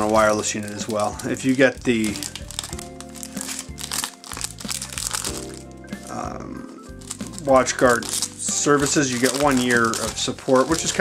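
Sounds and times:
background music with held notes: 0.0s - 11.0s
plastic sleeve crinkling: 0.0s - 11.0s.

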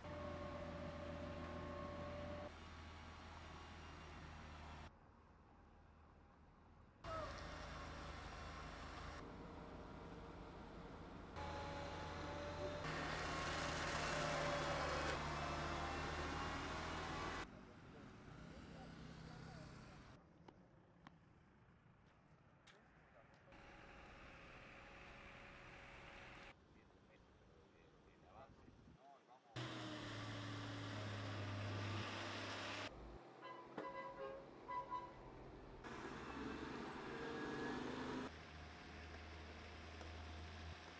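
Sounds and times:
diesel engine hum: 0.0s - 4.9s, 7.1s - 20.2s, 29.6s - 40.9s.

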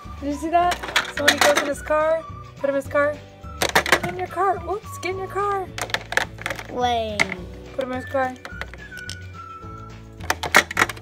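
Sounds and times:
plastic clicks: 3.6s - 4.2s, 5.7s - 9.3s, 10.2s - 11.0s.

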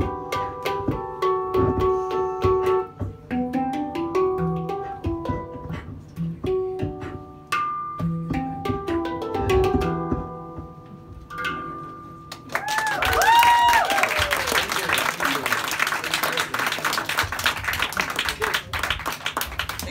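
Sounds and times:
hang drum notes ringing: 0.0s - 12.4s
cheering whoops: 12.5s - 15.0s
audience applause: 12.5s - 19.9s.

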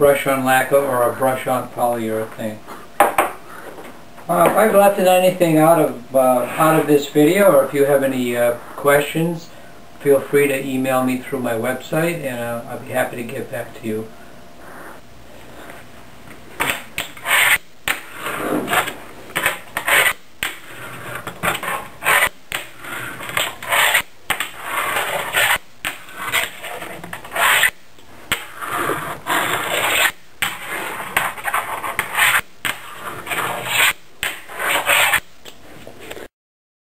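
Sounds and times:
small wheels rolling on desk: 16.6s - 27.7s, 28.3s - 35.2s.

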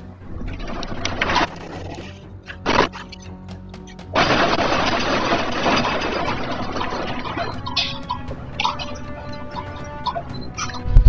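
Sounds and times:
earthquake rushing noise: 4.1s - 8.9s.

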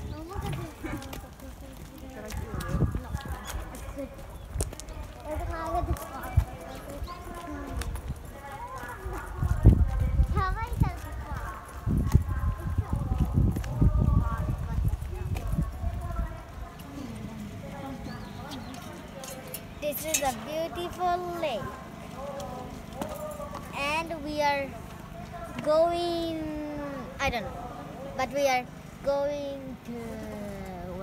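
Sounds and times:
people talking: 0.0s - 31.0s.

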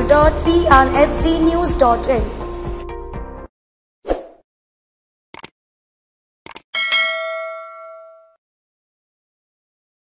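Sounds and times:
notification bell ding: 6.8s - 8.4s.

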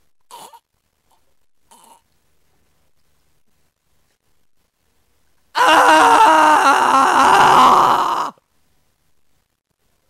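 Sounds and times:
person screaming in pain: 5.6s - 8.4s.

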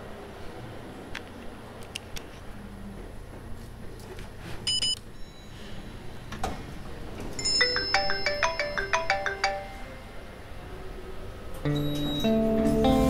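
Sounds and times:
mobile phone ringtone melody: 7.4s - 10.2s
brief high chime: 11.7s - 12.4s.

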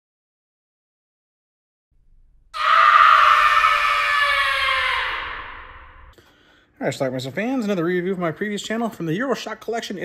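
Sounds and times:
long scream sliding down: 2.6s - 6.1s.

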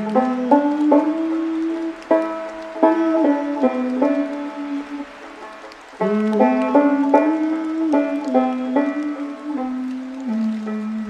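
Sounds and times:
banjo plucked notes: 0.0s - 11.0s
faint hiss of rain: 0.0s - 11.0s.

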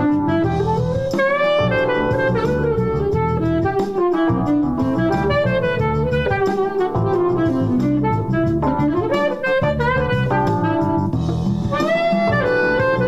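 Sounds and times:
alto saxophone improvising: 0.0s - 13.0s
bass and drum groove: 0.0s - 13.0s.

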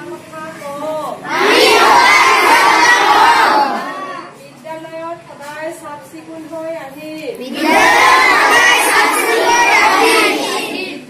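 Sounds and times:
children shouting together: 1.2s - 4.4s, 7.4s - 11.0s
group chanting: 1.3s - 4.2s, 7.5s - 11.0s.

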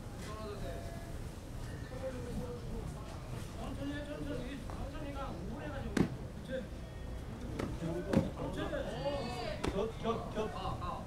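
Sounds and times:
crowd voices: 0.9s - 11.0s.

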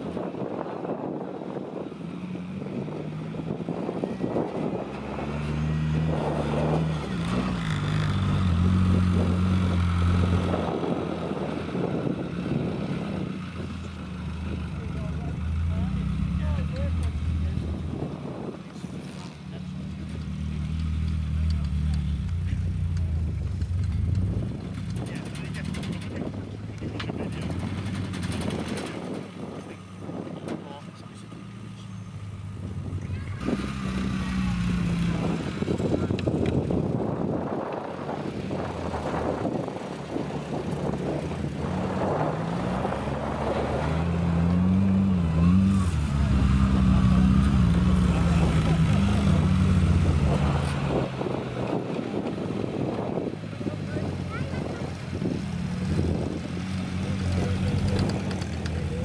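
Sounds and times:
car engine under load: 0.0s - 59.0s.

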